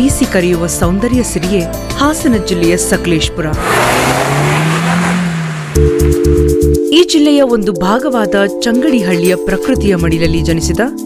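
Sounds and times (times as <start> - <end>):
music with singing: 0.0 - 3.6
car engine hum: 3.5 - 6.5
tyres hissing on wet road: 3.6 - 5.8.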